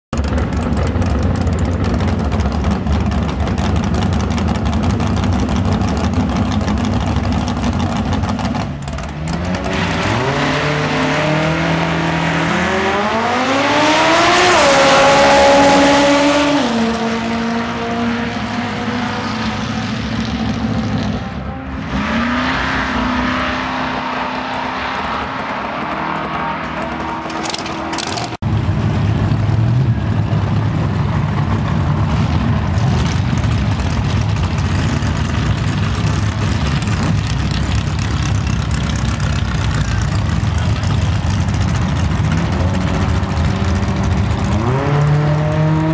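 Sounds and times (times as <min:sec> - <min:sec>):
drag racing car engines: 0:00.1 - 0:45.9.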